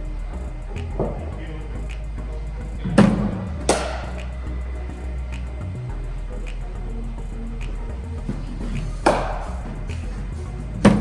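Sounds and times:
background music: 0:00.0 - 0:11.0
bat striking ball: 0:03.0 - 0:04.2, 0:09.0 - 0:09.5.

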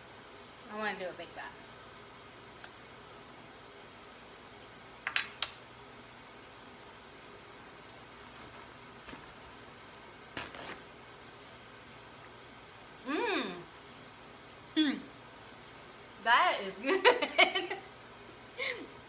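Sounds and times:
faint room hum: 0:00.0 - 0:19.0.

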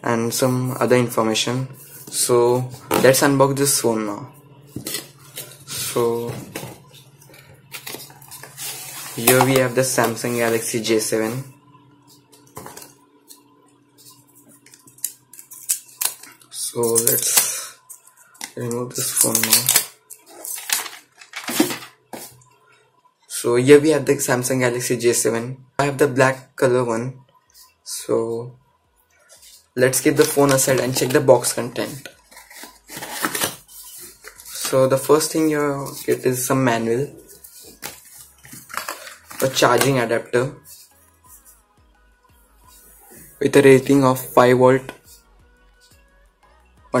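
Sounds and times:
cardboard packaging being handled: 0:04.7 - 0:10.7, 0:19.1 - 0:22.4, 0:31.8 - 0:36.4, 0:37.0 - 0:40.0
card and paper scraping: 0:04.7 - 0:11.4, 0:29.3 - 0:40.0.

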